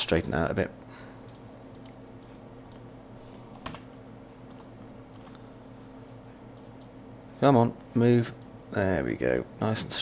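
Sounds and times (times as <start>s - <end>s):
faint steady hum: 0.0s - 10.0s
computer keyboard and mouse clicks: 1.2s - 2.9s.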